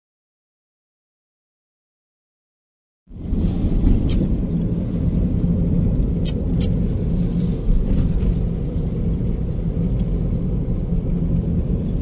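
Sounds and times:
car driving rumble from inside: 0:03.1 - 0:12.0.

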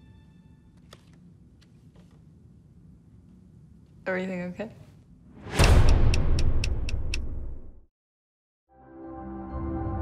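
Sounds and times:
sharp ticks: 0:05.8 - 0:07.3.

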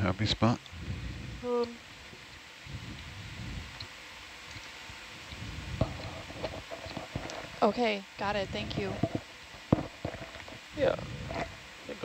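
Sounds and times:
background hiss: 0:00.0 - 0:12.0
faint ticks: 0:03.7 - 0:07.6.

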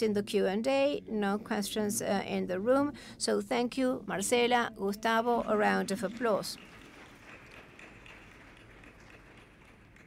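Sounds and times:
faint audience applause: 0:05.9 - 0:10.0.

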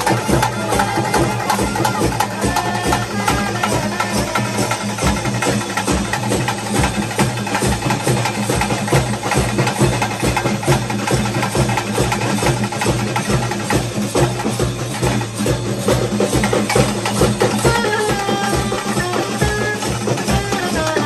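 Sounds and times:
drum ensemble playing fast rhythm: 0:00.0 - 0:21.0.

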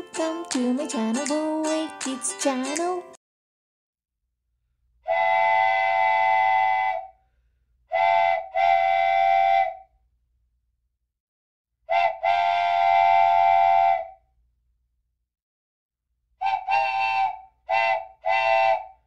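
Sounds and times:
train whistle blasts: 0:05.1 - 0:07.2, 0:07.9 - 0:09.9, 0:11.9 - 0:14.2, 0:16.4 - 0:19.0.

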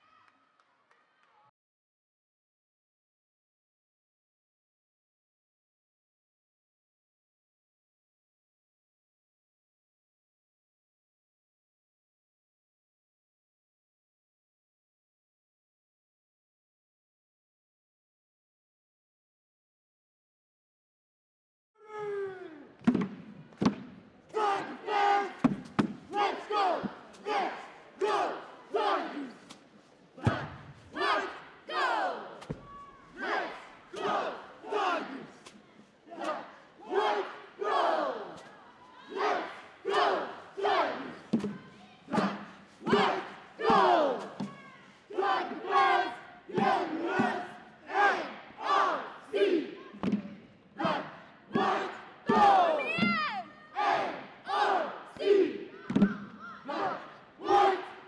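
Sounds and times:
cheerleaders shouting in unison: 0:24.3 - 0:25.4, 0:26.1 - 0:29.4, 0:30.2 - 0:35.4, 0:36.1 - 0:50.0, 0:50.8 - 0:58.0.

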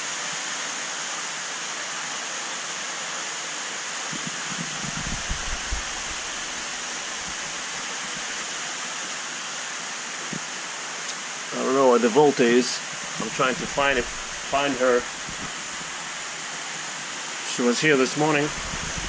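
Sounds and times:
aquarium filter water splashing: 0:04.1 - 0:08.6, 0:13.0 - 0:16.6, 0:18.4 - 0:19.0
low thumps: 0:04.2 - 0:06.4.

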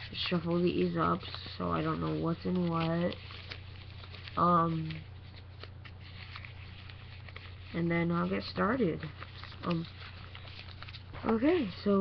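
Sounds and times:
paper rustles: 0:00.0 - 0:12.0
steady low hum: 0:00.0 - 0:12.0.

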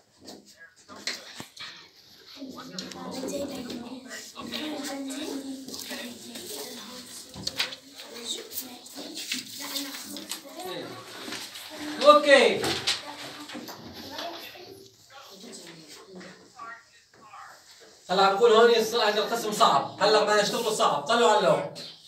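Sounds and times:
children chattering: 0:01.0 - 0:22.0.

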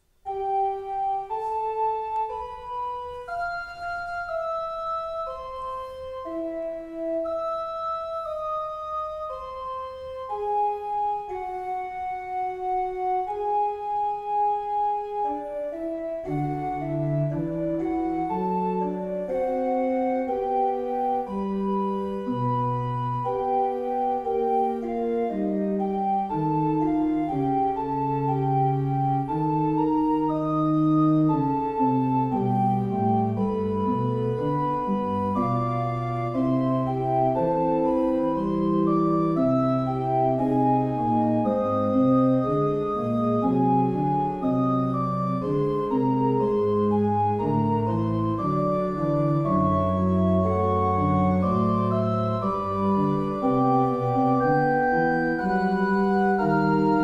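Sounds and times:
pipe organ fugue: 0:00.0 - 0:57.0.

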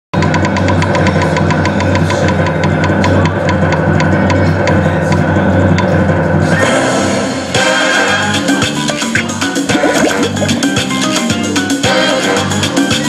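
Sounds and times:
rapid electronic ticks: 0:00.2 - 0:06.3.

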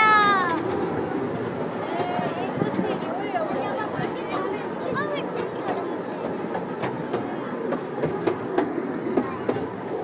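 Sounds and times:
train wheels clicking over rail joints: 0:00.0 - 0:10.0.

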